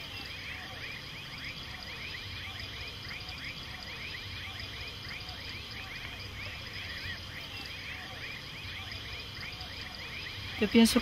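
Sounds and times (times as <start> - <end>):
insect drone: 0.0 - 11.0.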